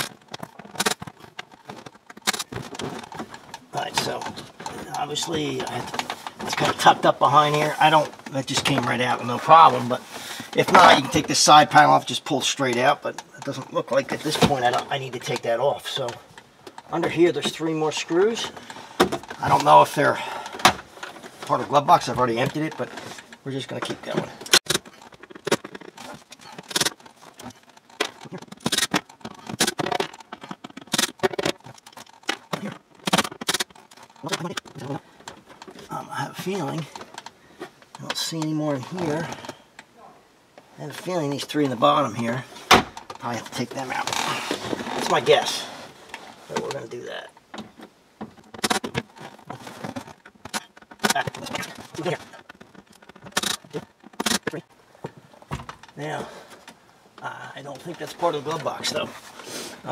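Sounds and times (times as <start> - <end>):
hand tools clinking and knocking: 0.0 - 59.9.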